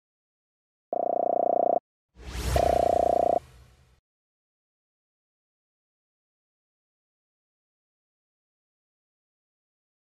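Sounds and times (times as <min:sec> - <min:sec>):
whooshing noise: 0:02.2 - 0:04.0
buzzy pulsing electronic tone: 0:02.6 - 0:03.4.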